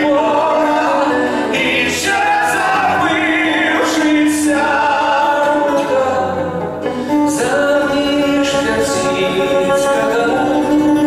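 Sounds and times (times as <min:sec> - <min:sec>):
acoustic guitars: 0:00.0 - 0:11.0
two men singing together: 0:00.0 - 0:11.0.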